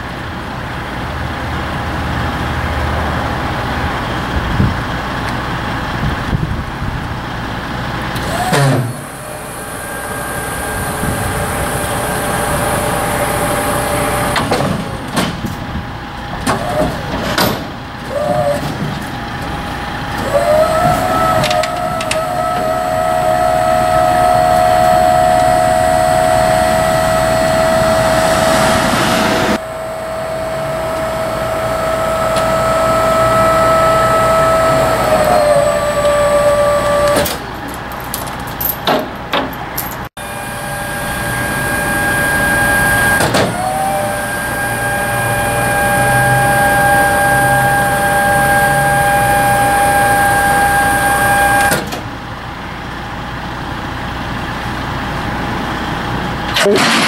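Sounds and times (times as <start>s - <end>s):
hydraulic pump whine: 3.3s - 38.1s, 40.2s - 57.0s.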